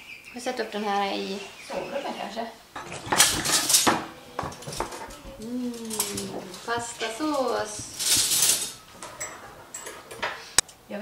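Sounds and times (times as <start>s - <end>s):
cutlery clinking on a plate: 2.8s - 10.6s.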